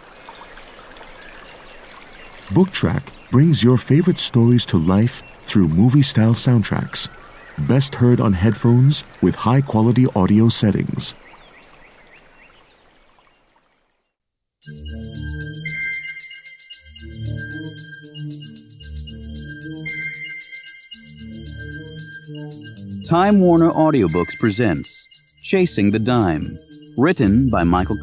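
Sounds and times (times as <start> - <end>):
soft steady hiss: 0.0 - 13.9
running water: 0.0 - 14.0.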